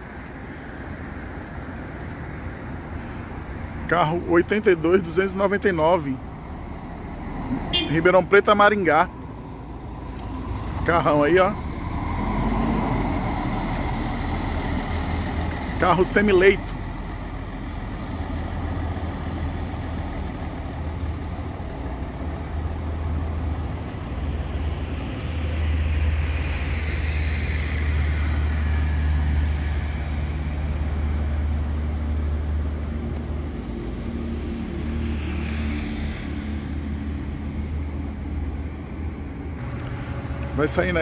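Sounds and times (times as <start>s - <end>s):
vehicles passing by: 0.0s - 41.0s
coach diesel engine rumbling: 2.7s - 34.1s.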